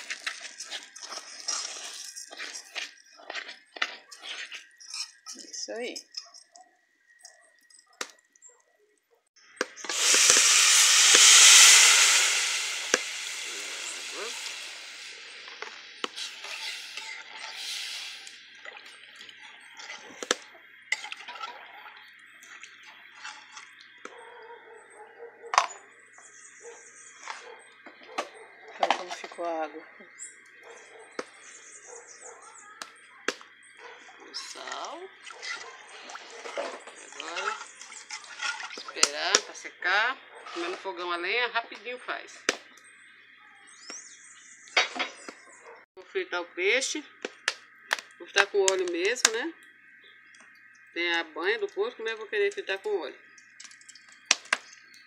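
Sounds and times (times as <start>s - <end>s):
water hissing in hot fat: 9.7s - 24.1s.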